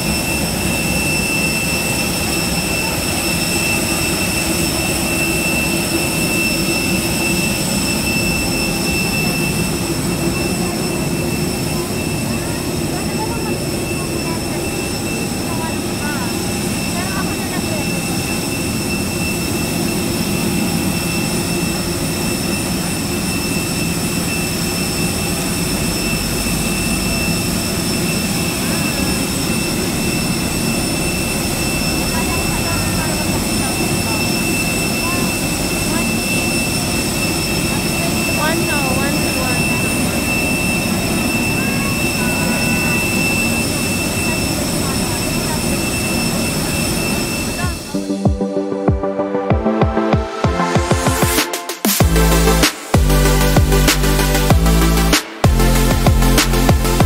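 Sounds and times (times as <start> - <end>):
faint voices: 0.0 - 51.6
jet aircraft whine: 0.0 - 57.0.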